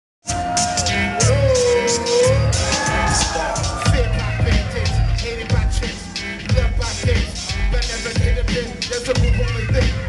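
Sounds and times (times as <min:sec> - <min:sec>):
hip hop beat over loudspeakers: 0:00.2 - 0:10.0.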